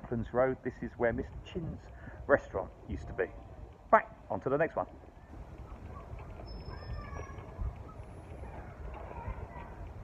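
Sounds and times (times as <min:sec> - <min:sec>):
faint high chirps: 0:06.3 - 0:08.0.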